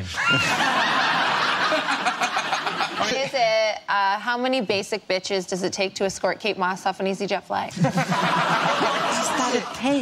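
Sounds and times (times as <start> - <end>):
studio audience laughing: 0.2 - 3.5, 7.7 - 10.0.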